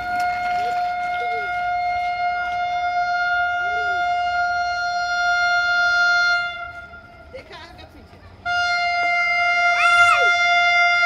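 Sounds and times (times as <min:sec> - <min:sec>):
train horn blast: 0:00.1 - 0:07.3, 0:08.4 - 0:11.0.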